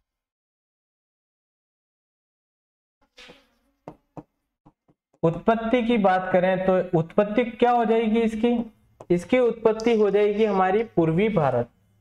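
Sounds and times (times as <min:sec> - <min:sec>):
marker pen squeaking on whiteboard: 0:03.0 - 0:04.3, 0:08.3 - 0:10.9.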